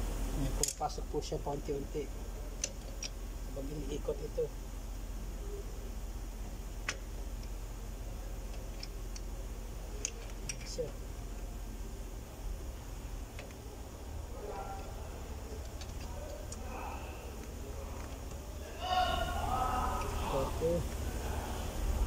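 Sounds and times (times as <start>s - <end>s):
steady low hum: 0.0s - 22.0s
light metallic wrench clicks: 0.4s - 1.7s, 2.6s - 3.2s, 8.4s - 9.3s, 9.9s - 10.9s.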